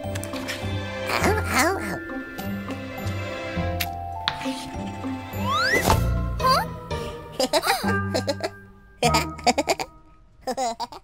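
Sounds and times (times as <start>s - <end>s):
soft background music: 0.0s - 10.5s.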